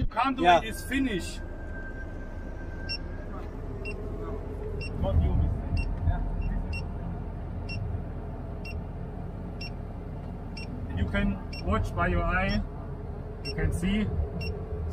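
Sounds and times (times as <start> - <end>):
crane engine low rumble: 0.0 - 14.9
steady high beep: 0.4 - 5.1.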